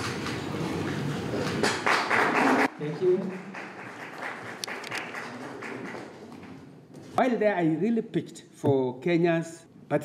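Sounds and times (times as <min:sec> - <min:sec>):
small group applauding: 0:01.3 - 0:06.7.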